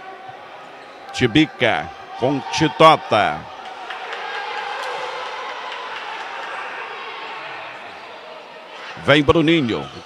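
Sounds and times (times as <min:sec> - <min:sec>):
crowd murmur in a hall: 0:03.2 - 0:10.0.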